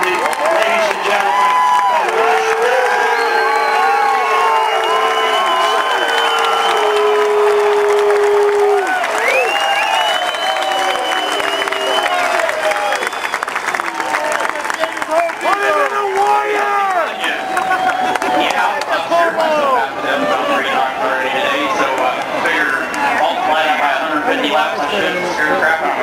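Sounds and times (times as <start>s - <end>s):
crowd clapping: 0.0s - 26.0s
crowd yelling: 0.0s - 26.0s.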